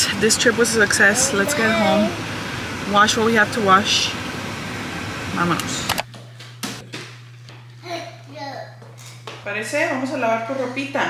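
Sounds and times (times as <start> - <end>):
steady low hum: 0.0 - 11.0
small child's voice: 1.1 - 2.2, 7.8 - 8.9.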